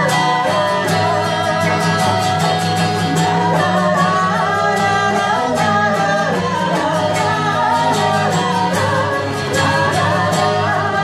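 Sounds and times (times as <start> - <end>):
acoustic guitar: 0.0 - 11.0
strummed lute: 0.0 - 11.0
women singing: 0.0 - 11.0.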